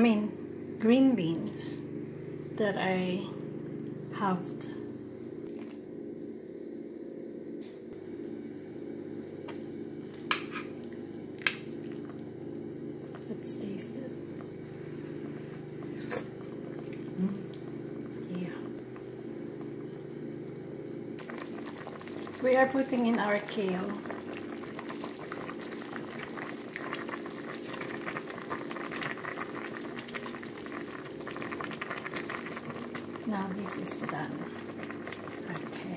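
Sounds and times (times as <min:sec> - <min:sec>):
low steady hum: 0:00.0 - 0:35.9
broth simmering in pot: 0:08.0 - 0:35.9.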